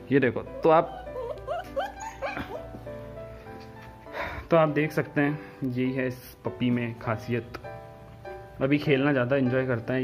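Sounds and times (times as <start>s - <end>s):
soft background music: 0.0s - 10.0s
puppy whimpering yelps: 0.6s - 2.8s.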